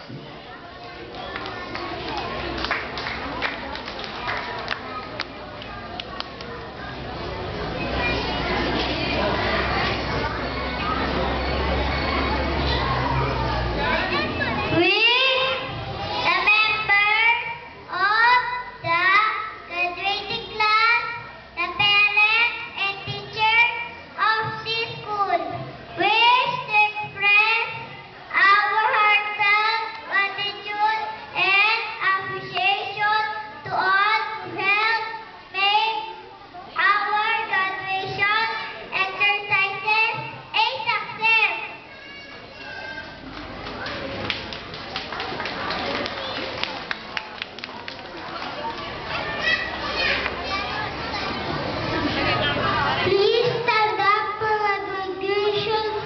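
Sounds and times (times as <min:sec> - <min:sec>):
crowd chatter: 0:00.0 - 0:56.0.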